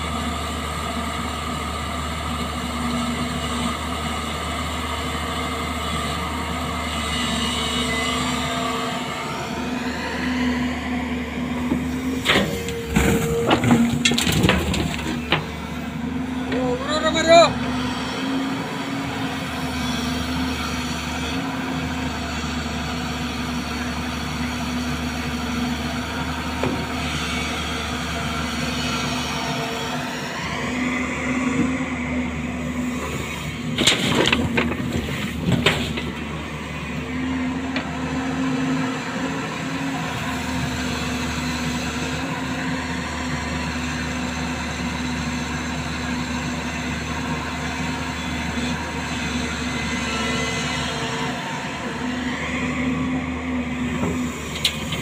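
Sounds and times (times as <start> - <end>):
diesel engines running: 0.0 - 55.0
excavator revving with rising whine: 0.0 - 55.0.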